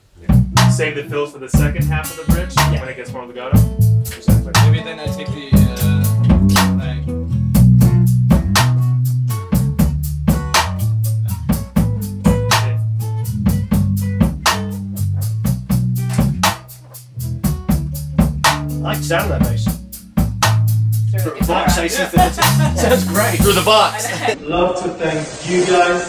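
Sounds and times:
drum kit steady beat: 0:00.0 - 0:24.4
electric bass sustained notes: 0:00.0 - 0:24.4.

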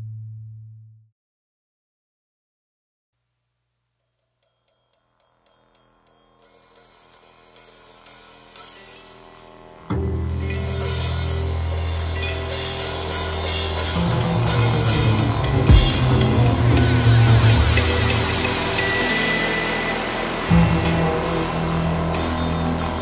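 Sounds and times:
drum kit and cymbals: 0:04.1 - 0:23.0
grunge-funk rock band: 0:09.9 - 0:23.0.

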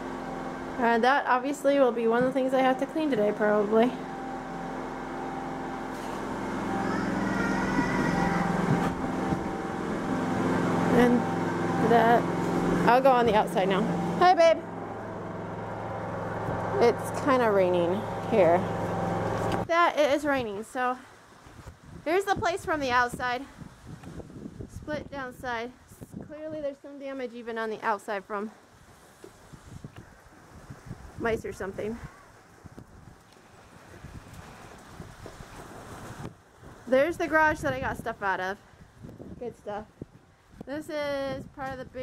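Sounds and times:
generator humming: 0:00.0 - 0:20.6
wind buffeting microphone: 0:06.9 - 0:14.0, 0:21.4 - 0:26.8, 0:28.8 - 0:42.0.

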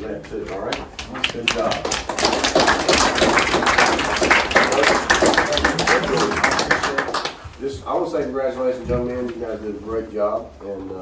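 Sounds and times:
audience applause: 0:00.6 - 0:07.4.

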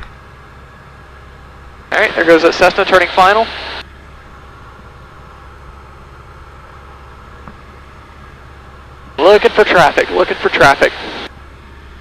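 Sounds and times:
aircraft engine drone: 0:00.0 - 0:12.0.

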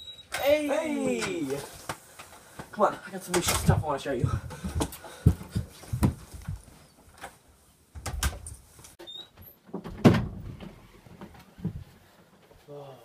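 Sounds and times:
footsteps: 0:01.1 - 0:06.9
door thumps and knocks: 0:09.8 - 0:10.7.

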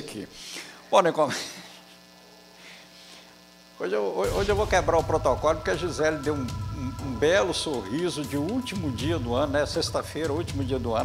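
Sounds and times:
faint electrical hum: 0:00.0 - 0:11.0
man speaking: 0:03.8 - 0:11.0.

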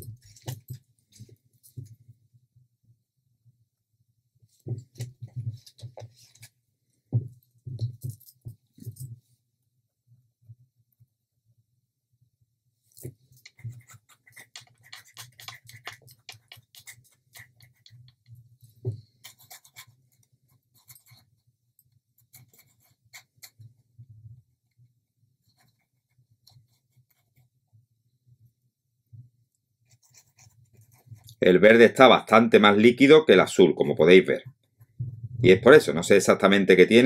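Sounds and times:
small clicks taps and scrapes: 0:04.5 - 0:06.6, 0:12.9 - 0:23.8, 0:25.5 - 0:27.5, 0:29.5 - 0:31.4.

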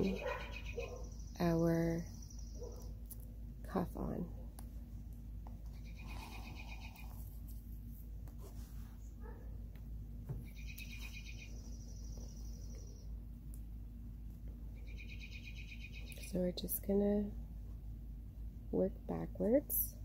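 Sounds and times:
bird trilling: 0:00.0 - 0:01.3, 0:05.8 - 0:07.1, 0:10.5 - 0:13.0, 0:14.8 - 0:16.2.

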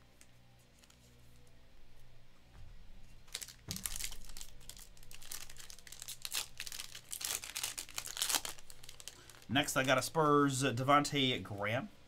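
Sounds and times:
foil wrapper crinkling: 0:03.2 - 0:10.1.

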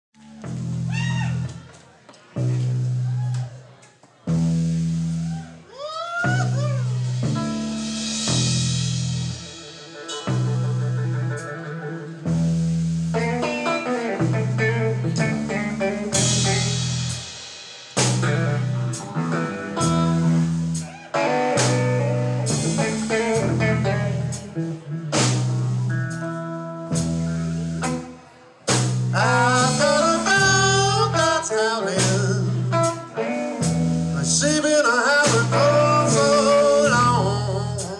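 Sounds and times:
electric bass: 0:00.1 - 0:01.7, 0:02.4 - 0:03.7, 0:04.3 - 0:05.6, 0:06.3 - 0:37.9
drum kit: 0:00.2 - 0:37.9
electric guitar: 0:06.2 - 0:37.9
person singing: 0:29.1 - 0:37.9.

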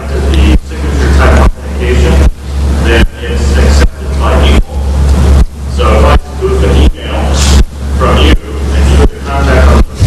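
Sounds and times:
man asking a question: 0:00.0 - 0:05.0, 0:05.7 - 0:10.0
loud low hum: 0:00.0 - 0:10.0.

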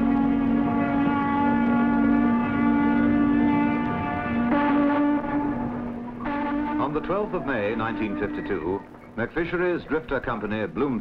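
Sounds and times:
sustained low horn-like chord: 0:00.0 - 0:08.8.

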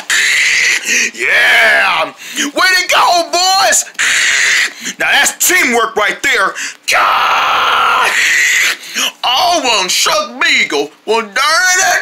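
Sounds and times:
person screaming raspily: 0:00.0 - 0:05.0, 0:06.9 - 0:09.8, 0:11.4 - 0:12.0.

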